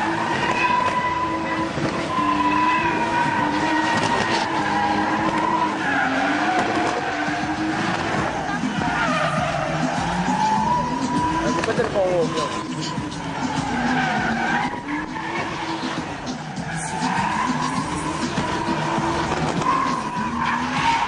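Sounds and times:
car engine at high revs: 0.0s - 21.0s
tyre squeal: 0.0s - 21.0s.

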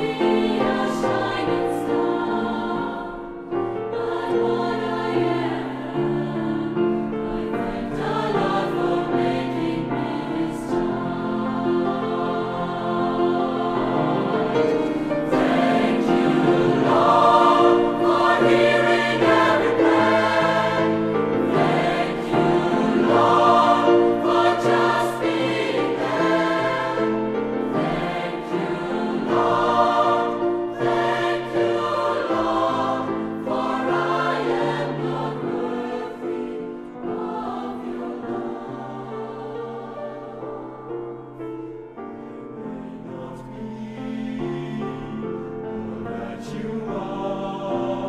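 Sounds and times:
mixed choir singing chords: 0.0s - 48.0s.

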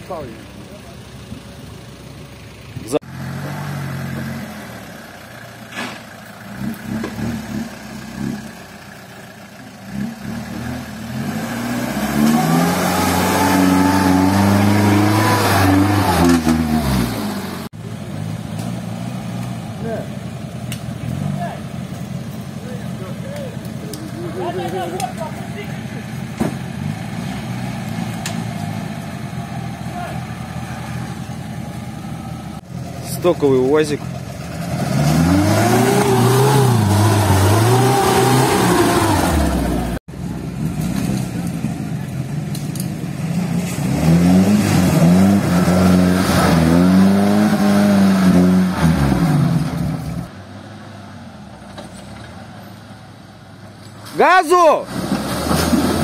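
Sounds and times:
engine revving hard: 9.9s - 17.7s, 34.5s - 40.0s, 43.7s - 50.3s.

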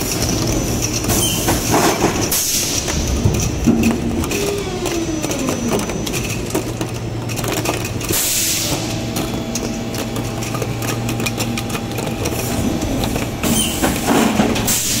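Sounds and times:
machine hum: 0.0s - 15.0s.

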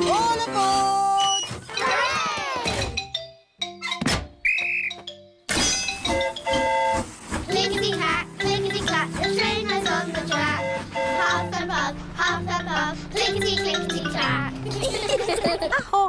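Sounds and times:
children's show background music: 0.0s - 4.2s, 5.1s - 15.7s
pea whistle trilling blast: 4.4s - 5.0s.

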